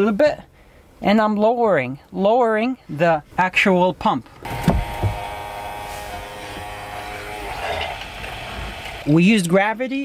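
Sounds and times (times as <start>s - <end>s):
battery pump whining: 4.5s - 9.1s.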